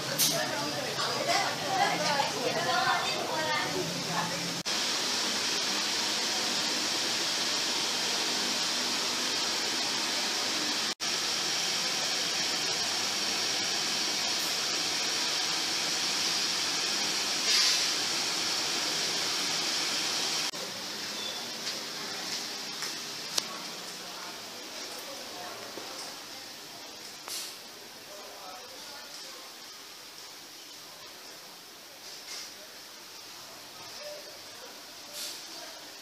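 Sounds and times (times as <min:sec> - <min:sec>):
steady hiss: 0:00.0 - 0:21.4, 0:26.6 - 0:36.0.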